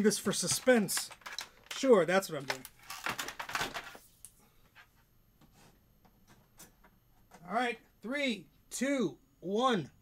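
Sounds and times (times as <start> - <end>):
cables and connectors clicking: 0.4 - 4.4.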